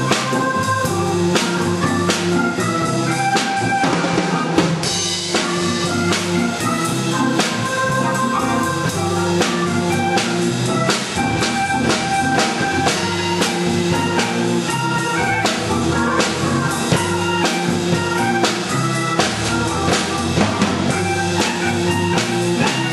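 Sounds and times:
drum beat: 0:00.0 - 0:22.9
organ playing chords: 0:00.0 - 0:22.9.

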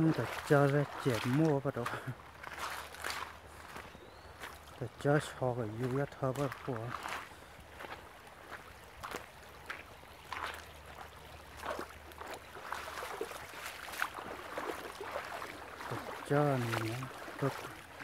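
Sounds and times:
footsteps crunching on gravel: 0:00.0 - 0:18.0
shallow creek running: 0:00.0 - 0:18.0.

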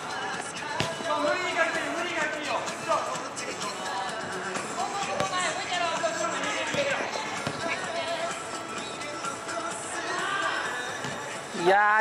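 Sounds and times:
background music: 0:00.0 - 0:12.0
ball kick: 0:00.7 - 0:01.2, 0:05.0 - 0:05.5, 0:06.6 - 0:07.8, 0:11.0 - 0:11.3.

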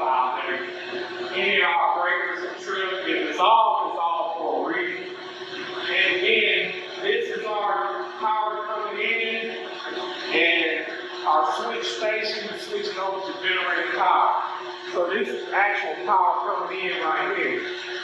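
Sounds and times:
man talking: 0:00.0 - 0:05.0, 0:05.8 - 0:09.6, 0:10.3 - 0:17.7
machinery hum: 0:00.0 - 0:18.0.

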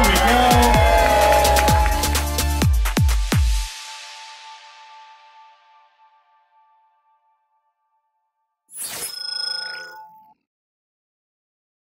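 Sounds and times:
bright ringing chime: 0:08.8 - 0:10.3.

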